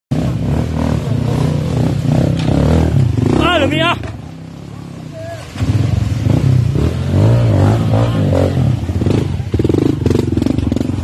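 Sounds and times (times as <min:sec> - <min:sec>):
dirt bike engine at low revs: 0:00.1 - 0:11.0.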